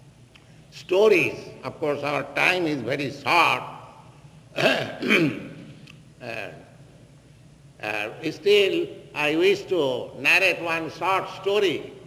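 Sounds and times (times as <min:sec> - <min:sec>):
man speaking: 0:00.7 - 0:03.9, 0:06.2 - 0:06.7, 0:07.8 - 0:12.0
man coughing: 0:04.6 - 0:05.6.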